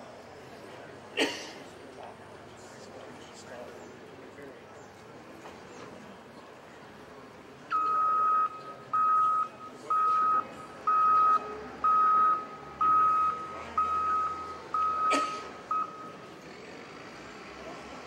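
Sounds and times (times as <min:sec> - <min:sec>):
reversing alarm beeping: 0:07.7 - 0:16.2.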